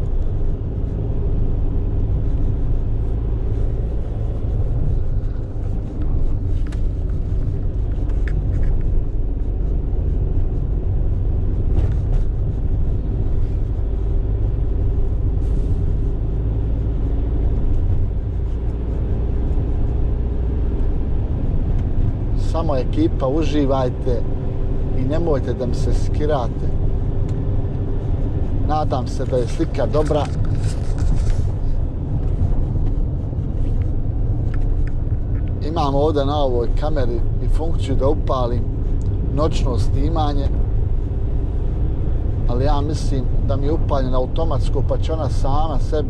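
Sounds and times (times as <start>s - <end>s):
road noise rumble: 0.0s - 46.0s
van engine hum: 0.0s - 46.0s.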